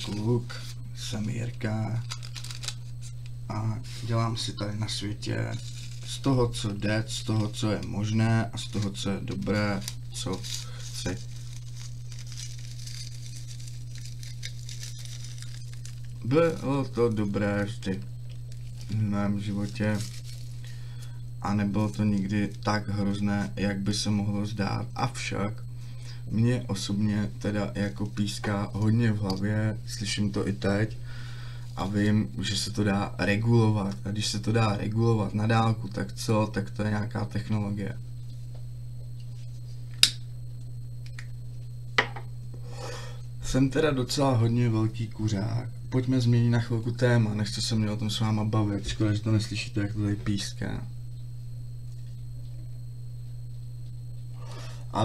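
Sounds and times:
rolling paper rustling: 0:00.0 - 0:03.2, 0:05.3 - 0:20.8
low electrical hum: 0:00.0 - 0:55.0.

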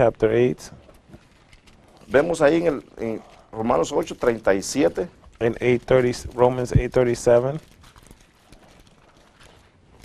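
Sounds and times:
pages rustling: 0:00.9 - 0:10.0.

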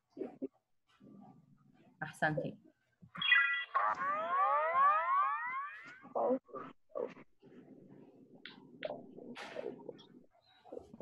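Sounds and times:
layered whistling tones sliding upward: 0:03.2 - 0:06.1.

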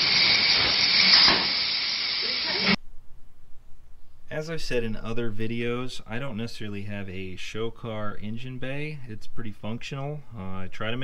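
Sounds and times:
plasma cutter hiss: 0:00.0 - 0:02.8.

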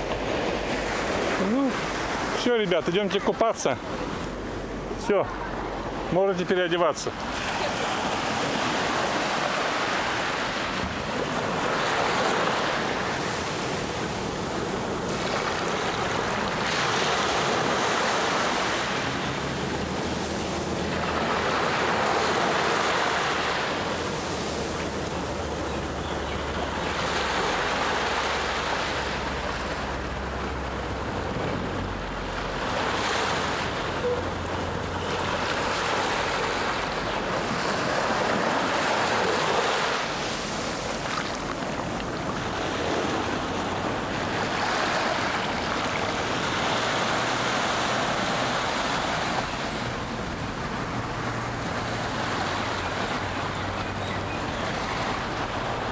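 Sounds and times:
sea waves washing on sandy beach: 0:00.0 - 0:55.9.

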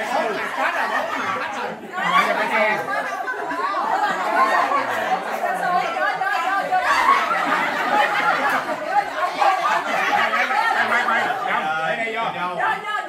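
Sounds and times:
people chattering: 0:00.0 - 0:13.0.

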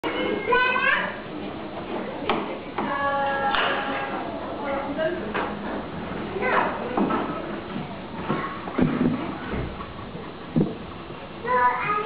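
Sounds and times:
children's background noise: 0:00.0 - 0:05.2, 0:06.2 - 0:09.9, 0:11.3 - 0:12.0
child's high call: 0:00.1 - 0:01.2.

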